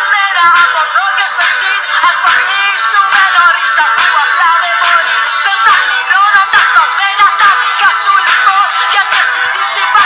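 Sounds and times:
pop song with vocals and band: 0.0 - 10.0.

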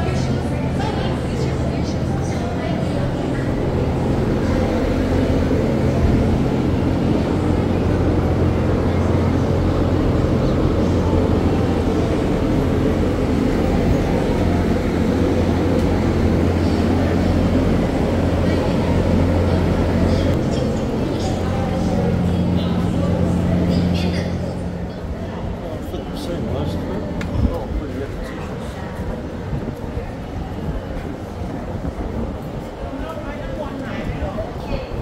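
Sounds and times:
engine humming: 0.0 - 32.9
indistinct voices: 0.0 - 35.0.

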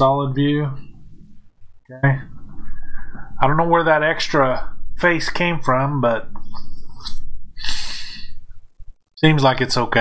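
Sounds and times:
low rumble: 0.8 - 7.6
breathy hiss: 6.6 - 8.5
man exhaling: 7.6 - 8.4.

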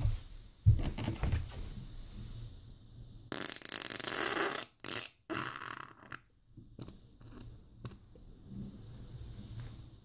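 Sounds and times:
person farting: 3.3 - 6.4.

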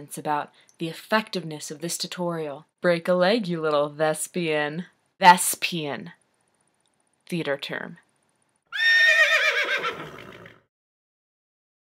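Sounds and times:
horse whinnying: 8.7 - 10.7.

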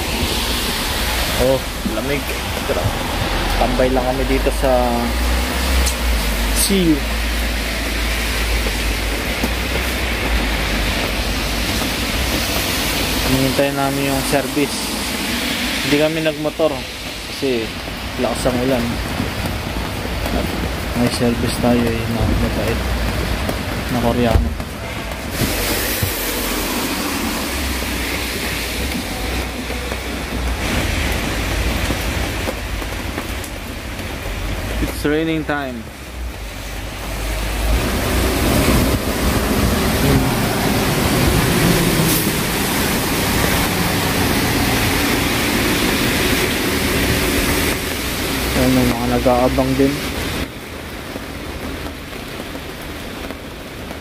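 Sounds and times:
heavy rain on fabric awning: 0.0 - 54.0
tyres hissing on wet road: 0.0 - 54.0
vehicles driving past: 0.0 - 54.0.

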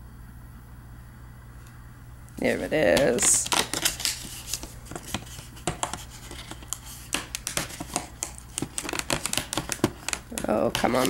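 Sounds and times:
cardboard packaging clicks and scrapes: 2.8 - 11.0.

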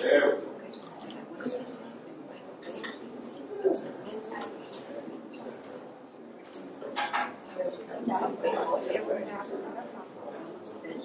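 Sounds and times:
murmur of people talking quietly: 0.0 - 11.0.

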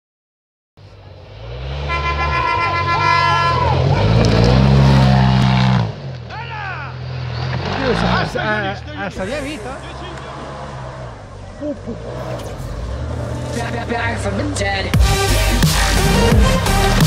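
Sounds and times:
engine revving: 0.8 - 17.0
people shouting: 2.0 - 5.4.

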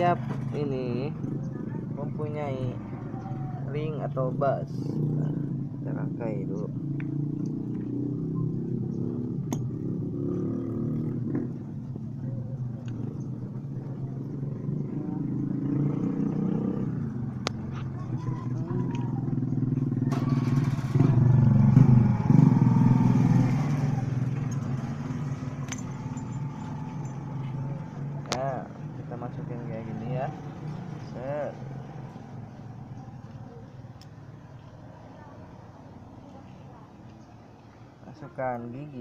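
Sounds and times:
motorcycle engine running: 4.3 - 38.3.

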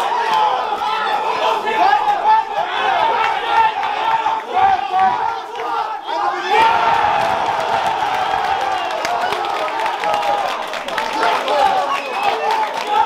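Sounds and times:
crowd shouting and yelling: 0.0 - 13.0.

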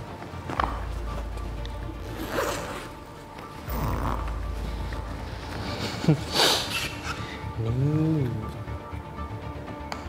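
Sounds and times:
soft background music: 0.0 - 10.0
zipper on canvas bag: 2.0 - 3.0.

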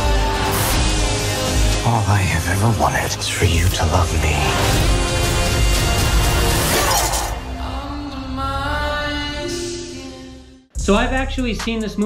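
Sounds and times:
dramatic trailer music: 0.0 - 11.3.

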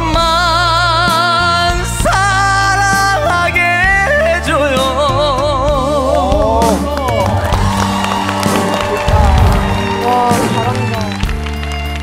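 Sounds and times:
band accompaniment: 0.0 - 12.0.

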